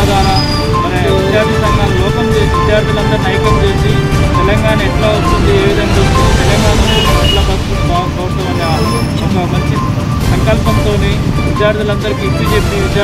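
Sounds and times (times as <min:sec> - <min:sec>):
man speaking into microphones: 0:00.0 - 0:13.0
street traffic: 0:00.0 - 0:13.0.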